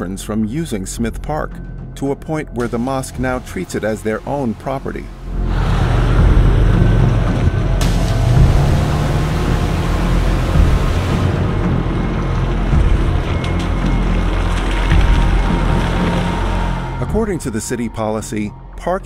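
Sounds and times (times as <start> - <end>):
background music: 0.0 - 19.0
cars driving past: 5.2 - 14.7.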